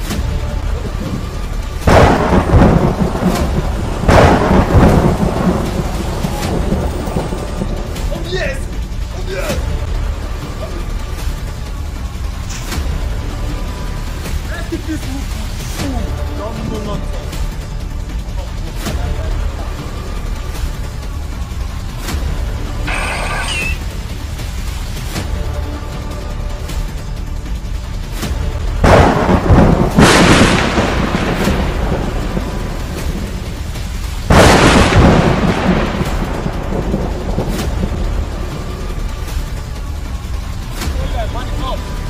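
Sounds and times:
steady low rumble: 0:00.1 - 0:42.0
booming blasts with rumble: 0:00.8 - 0:08.1, 0:28.5 - 0:38.6
electronic chirp sound effect: 0:22.9 - 0:23.8.

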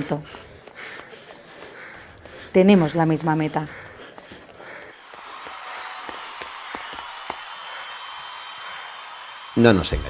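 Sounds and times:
applause: 0:04.8 - 0:10.0.

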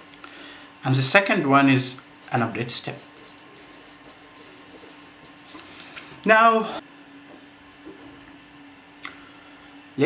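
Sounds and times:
pen scratching on paper: 0:02.2 - 0:05.4.

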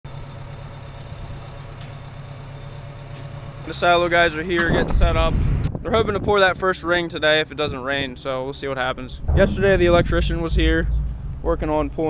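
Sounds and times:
truck engine idling: 0:00.1 - 0:04.6.

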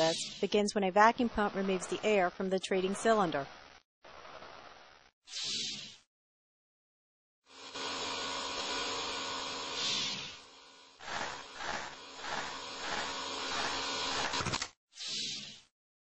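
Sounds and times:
vacuum pump whirring: 0:07.6 - 0:14.7.

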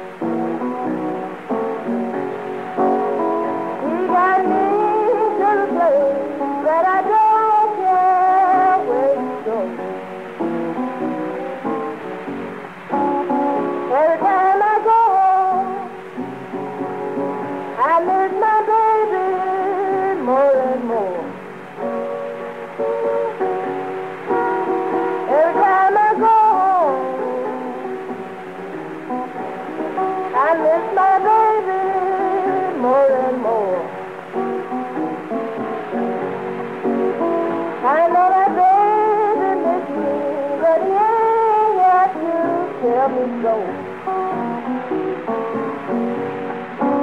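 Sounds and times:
acoustic guitar: 0:00.0 - 0:47.0
old country blues record: 0:00.0 - 0:47.0
swooping sung phrases: 0:30.3 - 0:34.0, 0:37.8 - 0:43.9.

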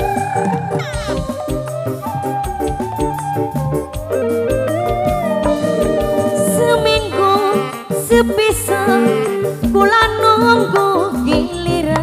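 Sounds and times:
warbling melody line: 0:00.0 - 0:11.6.

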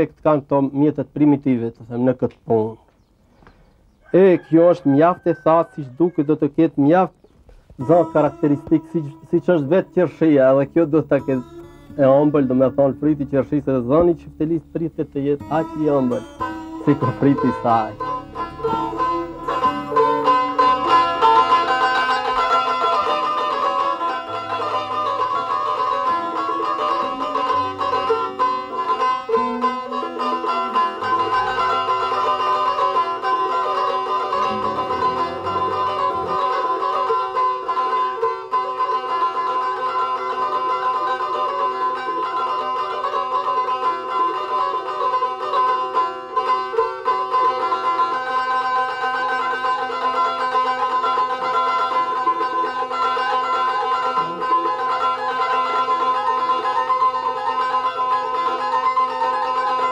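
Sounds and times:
plucked lute folk melody: 0:06.8 - 0:59.9
held drone tone: 0:07.8 - 0:23.1, 0:27.7 - 0:37.1.

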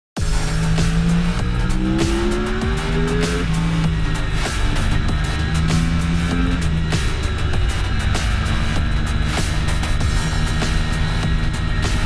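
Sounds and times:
loud music with even beat: 0:00.2 - 0:12.0
motorcycle engine accelerating: 0:00.2 - 0:12.0.

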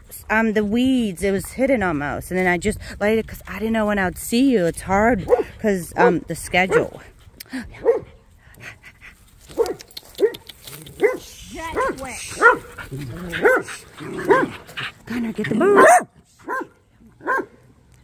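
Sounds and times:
dog barking: 0:09.6 - 0:10.4, 0:11.0 - 0:12.7, 0:13.4 - 0:14.5, 0:15.7 - 0:17.6.

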